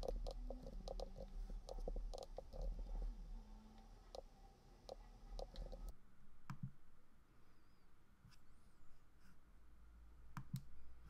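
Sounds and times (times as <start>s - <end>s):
mouse clicks: 0.0s - 2.7s, 3.8s - 5.9s, 6.5s - 6.8s, 10.3s - 10.7s
keyboard typing: 0.0s - 3.1s, 3.8s - 5.9s
steady low hum: 0.0s - 11.0s.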